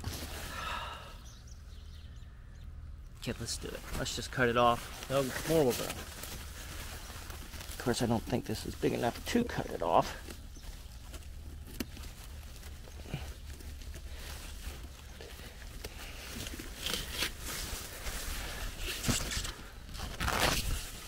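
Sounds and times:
rustling of leaves and vines: 0.0s - 1.8s, 3.1s - 21.0s
squash being cut from vine: 16.6s - 17.5s.

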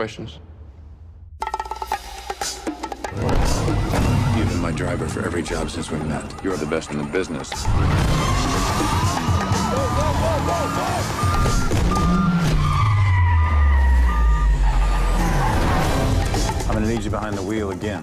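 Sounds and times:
film trailer music: 0.0s - 18.0s
tyres squealing: 3.2s - 16.5s
car engine revving: 7.5s - 16.7s.

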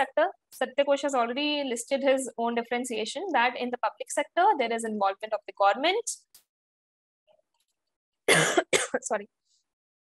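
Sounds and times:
woman coughing: 8.3s - 9.0s.

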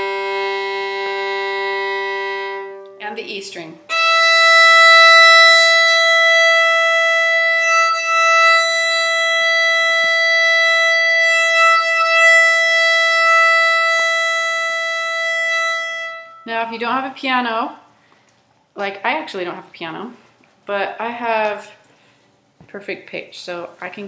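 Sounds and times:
violin long bowed note: 0.0s - 16.8s.

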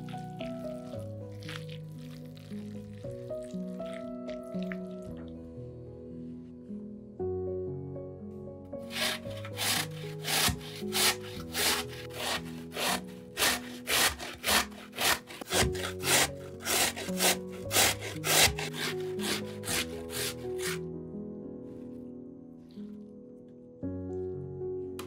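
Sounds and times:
potato rasping on grater: 8.9s - 20.8s.

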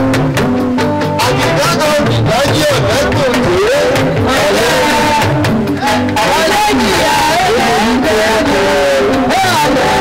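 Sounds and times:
live band: 0.0s - 10.0s
steady drum strokes: 0.0s - 10.0s
man chanting into a microphone: 6.2s - 10.0s.

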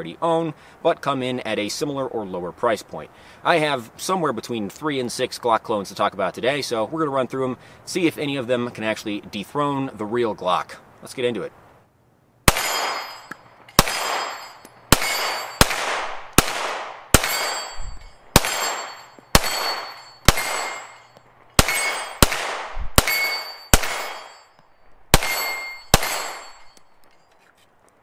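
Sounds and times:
pistol shots with ringing tail: 12.5s - 27.0s.

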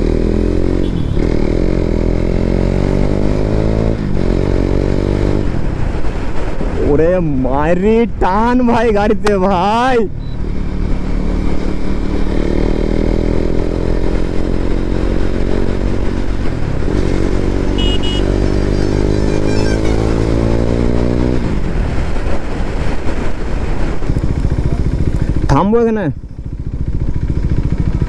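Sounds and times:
motorcycle engine accelerating hard: 0.0s - 6.0s, 10.4s - 28.0s.

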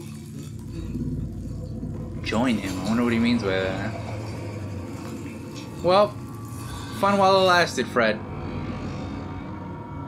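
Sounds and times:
deep steady rumble: 0.0s - 10.0s.

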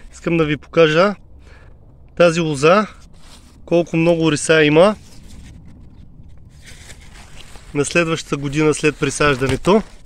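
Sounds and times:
low rumble: 0.0s - 8.9s
leaves rustling and scraping: 3.0s - 10.0s.

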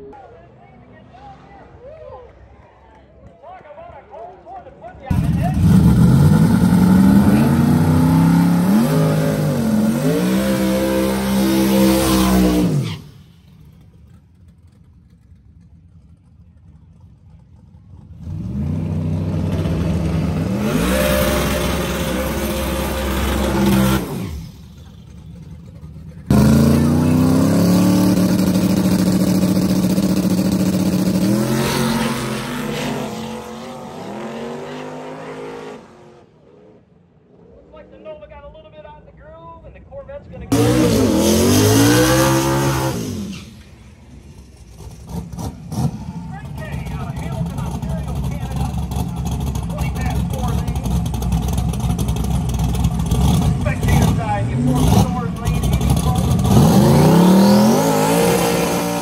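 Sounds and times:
drag race car engines revving: 5.1s - 59.0s.

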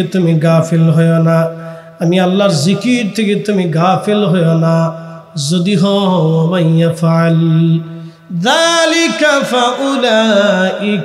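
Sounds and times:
man chanting a sermon: 0.0s - 11.0s.

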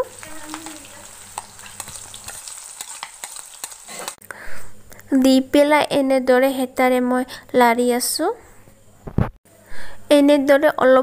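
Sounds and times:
onions sizzling in hot oil: 0.0s - 4.2s.

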